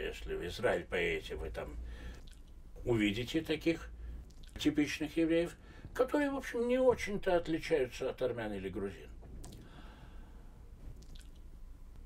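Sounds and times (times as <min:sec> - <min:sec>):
low steady room hum: 0:00.0 - 0:12.0
man's soft breath: 0:01.8 - 0:02.2, 0:09.6 - 0:10.8
faint mouth click: 0:02.1 - 0:02.6, 0:04.2 - 0:04.6, 0:11.0 - 0:11.5.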